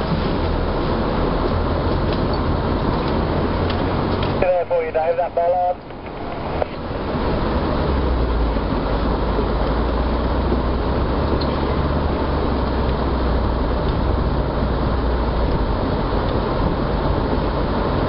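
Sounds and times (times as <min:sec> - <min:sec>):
road rumble: 0:00.0 - 0:18.0
vehicle engine hum: 0:00.0 - 0:18.0.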